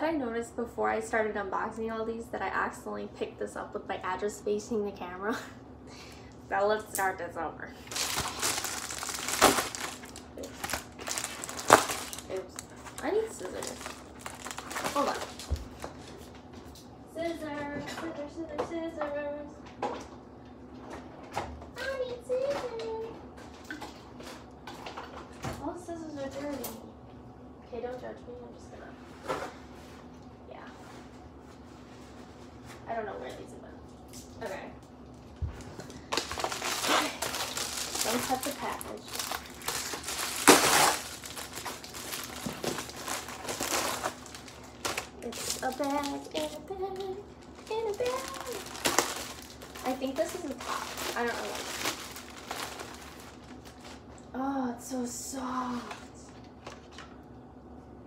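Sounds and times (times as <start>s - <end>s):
plastic mailer bag crinkling: 7.8s - 15.8s, 35.8s - 54.1s.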